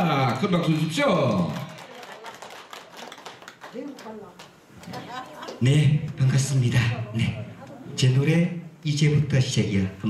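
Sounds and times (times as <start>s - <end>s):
audience applauding: 0.2s - 5.6s.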